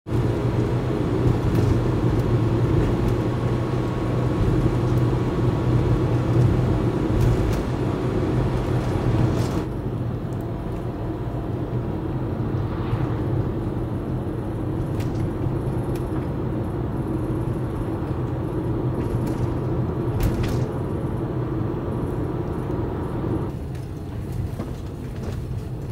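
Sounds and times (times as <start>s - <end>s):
engine and road rumble: 0.0s - 25.9s
hiss of tyres and wind: 0.1s - 25.9s.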